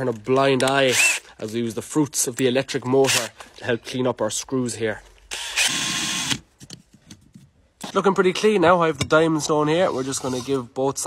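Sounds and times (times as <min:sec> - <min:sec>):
cordless drill spinning: 0:00.7 - 0:01.3, 0:05.3 - 0:06.4.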